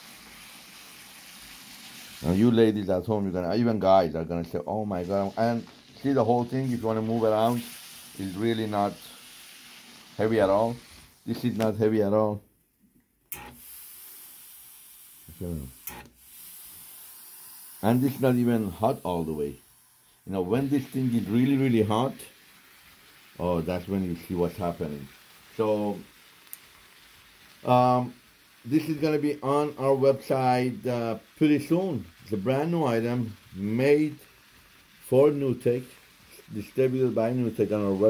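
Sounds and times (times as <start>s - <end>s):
steam iron hissing: 0.0s - 2.8s, 4.5s - 11.8s, 13.3s - 38.0s.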